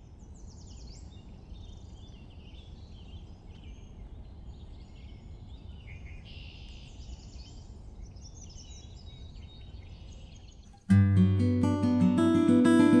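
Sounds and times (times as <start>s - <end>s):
small birds chirping: 0.0s - 13.0s
acoustic guitar playing: 10.9s - 13.0s.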